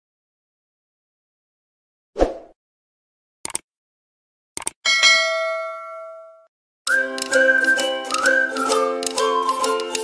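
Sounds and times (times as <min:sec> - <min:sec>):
bright bell ding: 0:04.9 - 0:06.5
plucked string music: 0:06.9 - 0:10.0.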